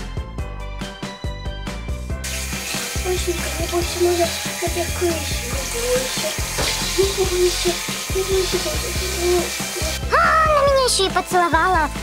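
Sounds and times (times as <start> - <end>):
background music: 0.0 - 12.0
shower head spraying water: 2.2 - 10.1.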